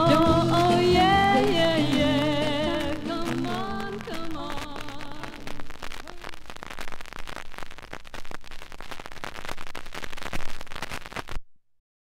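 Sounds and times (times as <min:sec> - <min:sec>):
music: 0:00.0 - 0:05.6
vinyl crackle and pops: 0:00.0 - 0:11.6.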